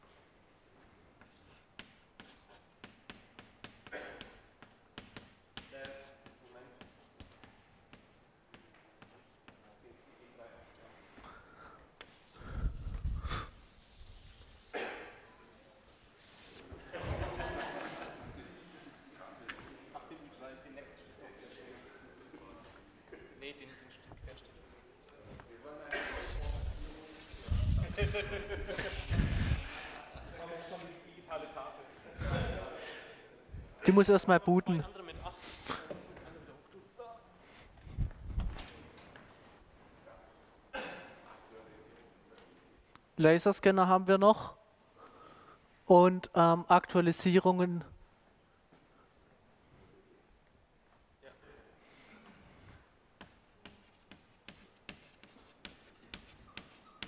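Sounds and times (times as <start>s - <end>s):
chalk writing on blackboard: 1.2s - 10.0s, 12.0s - 18.8s, 25.2s - 31.0s, 52.5s - 57.0s.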